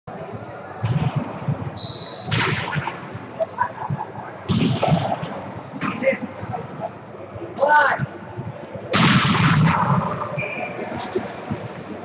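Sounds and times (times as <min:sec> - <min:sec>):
players' voices: 0:00.1 - 0:09.0
shoe squeak: 0:01.8 - 0:02.3, 0:10.4 - 0:11.2
volleyballs hit and bouncing: 0:04.4 - 0:06.0.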